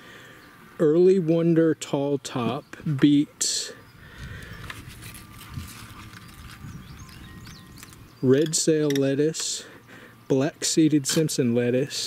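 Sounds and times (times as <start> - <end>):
handling knocks and rustling leaves: 4.6 - 8.0.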